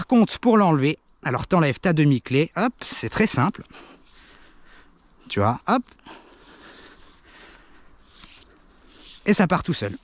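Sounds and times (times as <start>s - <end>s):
cord rustling on tree bark: 2.3s - 10.0s.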